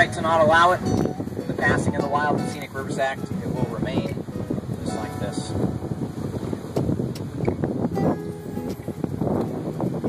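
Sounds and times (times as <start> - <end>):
jet boat engine: 0.0 - 10.0
rushing water: 0.0 - 10.0
wind buffeting microphone: 0.0 - 10.0.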